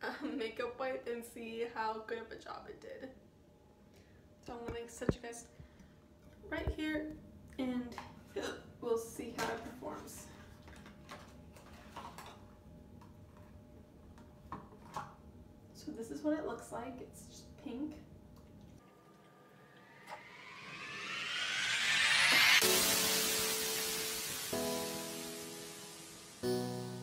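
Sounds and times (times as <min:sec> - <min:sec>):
whooshing rising sweep: 0:19.0 - 0:27.0.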